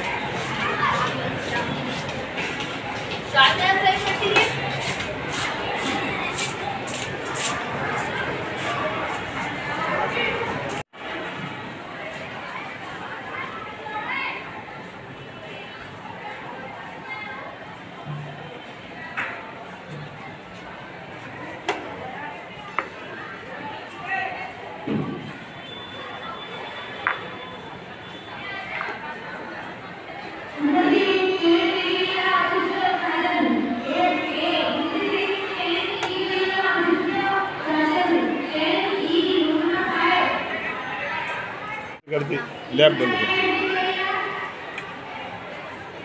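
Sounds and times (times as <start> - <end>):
faint background voices: 0.0 - 46.0.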